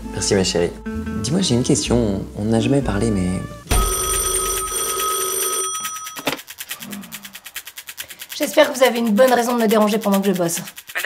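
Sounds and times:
high ringing tone: 3.7s - 6.3s
telephone bell ringing: 3.7s - 6.4s.

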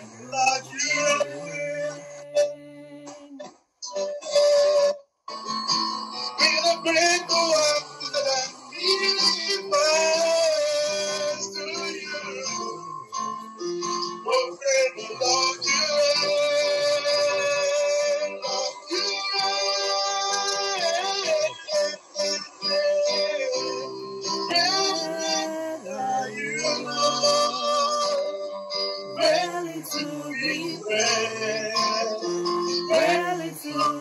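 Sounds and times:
person singing long notes: 0.0s - 5.0s, 15.0s - 28.4s, 29.2s - 34.0s
keyboard accompaniment: 0.0s - 34.0s.

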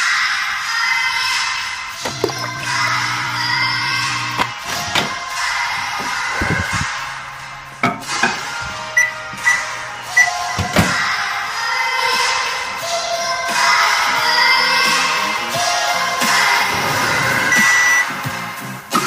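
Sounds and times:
background music: 0.0s - 19.0s
microwave keypad beeps: 8.9s - 10.4s, 17.5s - 18.1s.

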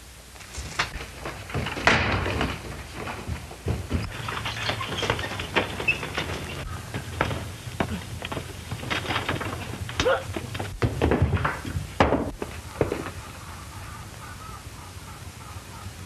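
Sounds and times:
scuffling and thuds of fistfight: 0.5s - 13.2s.

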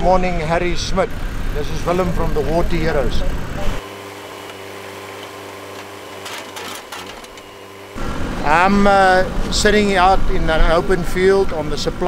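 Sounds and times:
diesel engine humming: 0.0s - 12.0s.

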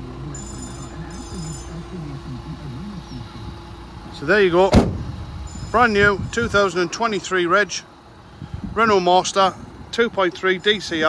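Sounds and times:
high-pitched electronic tone: 0.0s - 3.7s, 5.4s - 6.7s
faint distant voices: 0.0s - 4.8s
low steady rumble: 0.0s - 11.0s.

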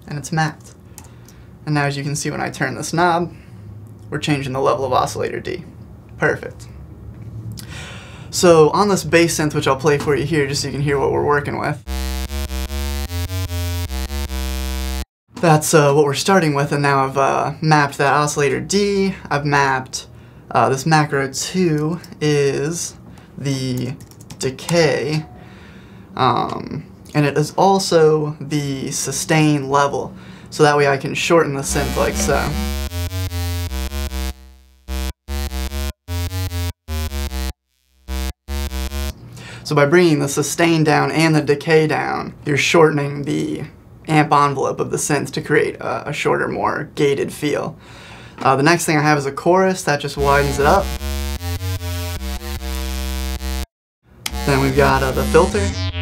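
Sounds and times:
buzzy synth bass notes: 11.9s - 15.1s, 31.6s - 39.2s, 50.2s - 53.7s, 54.3s - 56.0s.

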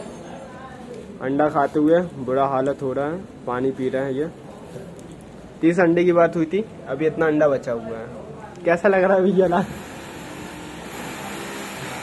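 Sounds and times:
mechanical whirring: 9.5s - 12.0s.

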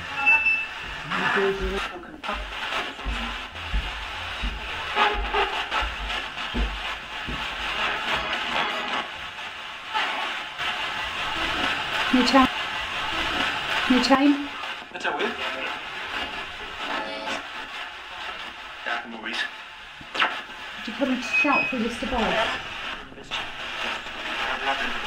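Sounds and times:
radio static: 0.0s - 25.0s
snatches of broadcast music: 0.0s - 25.0s
snatches of broadcast voices: 0.0s - 25.0s.

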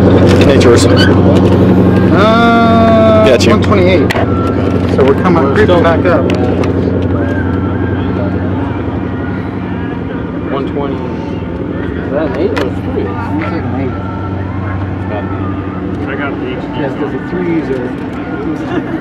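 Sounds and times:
engine droning: 0.0s - 19.0s
indistinct voices: 0.0s - 19.0s.

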